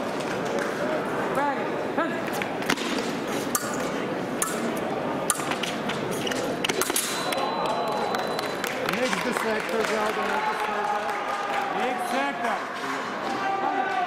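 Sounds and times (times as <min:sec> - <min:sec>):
background voices in a hall: 0:00.0 - 0:14.0
fencing blades clicking: 0:03.5 - 0:07.4.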